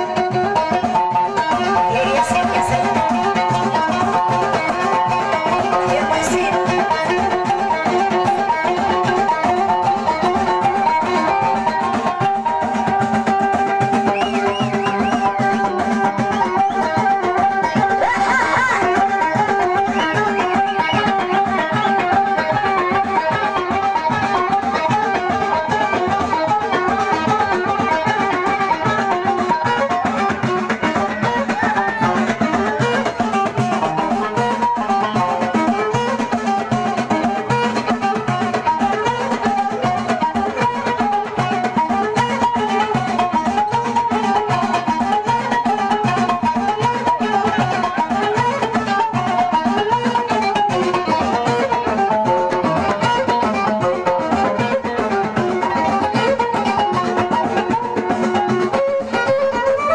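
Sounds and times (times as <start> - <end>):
plucked string melody: 0.0 - 59.9
steady drum beat: 0.0 - 59.9.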